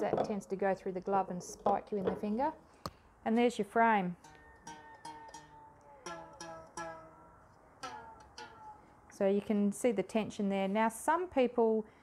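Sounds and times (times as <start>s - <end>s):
taut wires plucked ringing: 1.2s - 2.6s, 3.9s - 8.9s.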